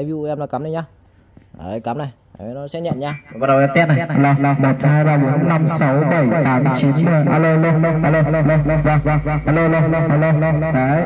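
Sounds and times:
man speaking into microphone with echo: 0:00.0 - 0:11.0.

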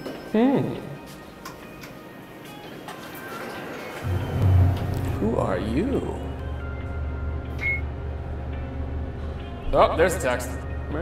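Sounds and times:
low hum: 0:04.0 - 0:09.7.

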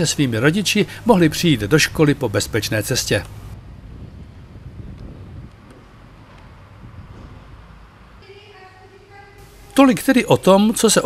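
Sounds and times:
wind buffeting microphone: 0:03.4 - 0:08.2.

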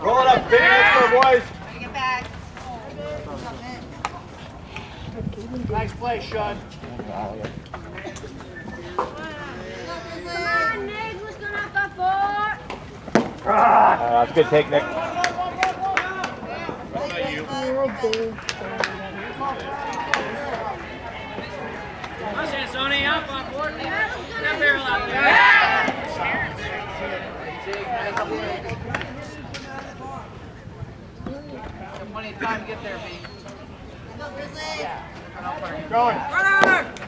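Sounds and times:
people calling out: 0:08.0 - 0:12.7, 0:13.3 - 0:30.5, 0:31.2 - 0:37.0.

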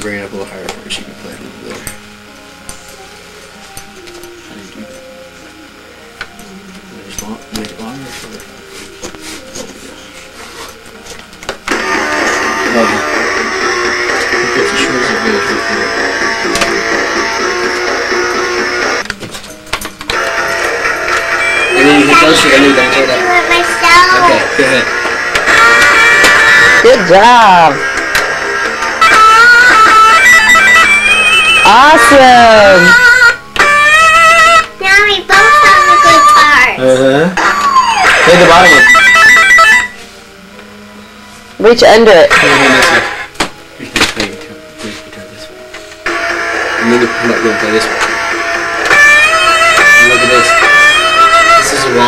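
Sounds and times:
toy electric guitar rock sounds: 0:20.1 - 0:36.7, 0:46.1 - 0:52.0.

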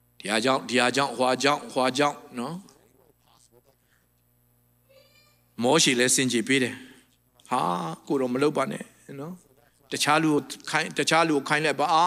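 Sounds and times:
man speaking over microphone: 0:00.2 - 0:03.9, 0:05.6 - 0:12.0.

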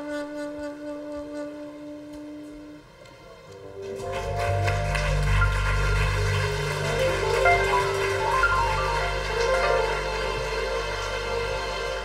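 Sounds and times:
keyboard chords: 0:03.3 - 0:12.0.

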